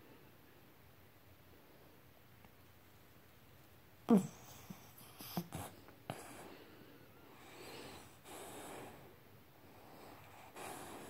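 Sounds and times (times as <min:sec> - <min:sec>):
dog breathing through nose: 0:07.4 - 0:09.1, 0:09.8 - 0:11.0.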